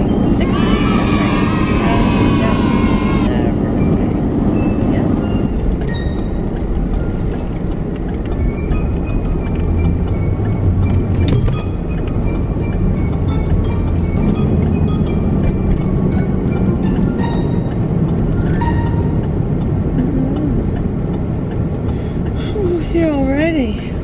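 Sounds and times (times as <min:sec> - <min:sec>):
light background music: 0:00.0 - 0:19.5
car road rumble: 0:00.0 - 0:24.0.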